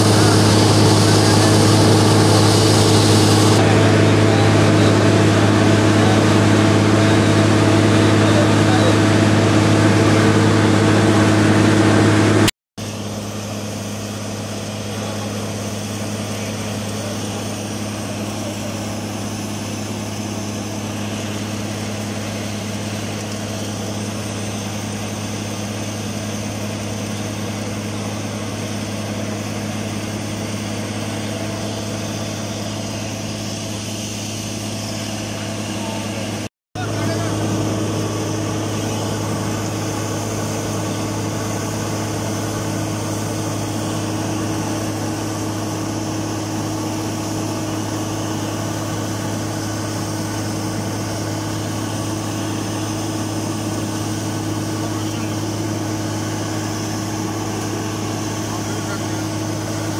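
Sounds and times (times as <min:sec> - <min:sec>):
drilling rig humming: 0:00.0 - 0:59.9
water and air gushing: 0:00.0 - 0:59.9.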